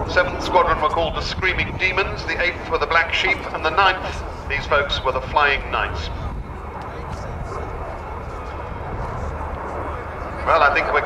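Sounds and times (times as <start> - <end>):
jet engine rumble: 0.0 - 11.0.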